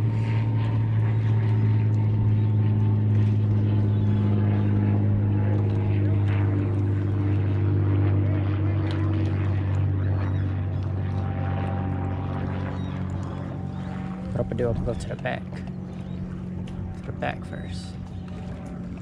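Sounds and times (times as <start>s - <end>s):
boat motor running: 0.0s - 19.0s.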